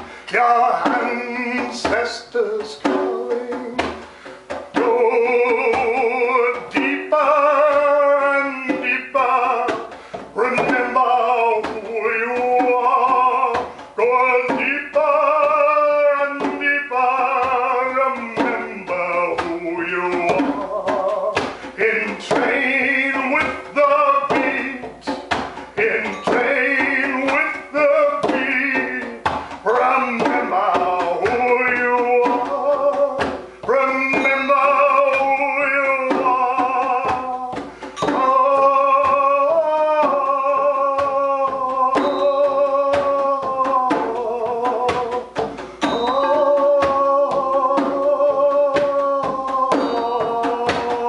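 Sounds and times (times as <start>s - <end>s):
frame drum beats: 0.0s - 51.0s
man overtone singing: 0.0s - 51.0s.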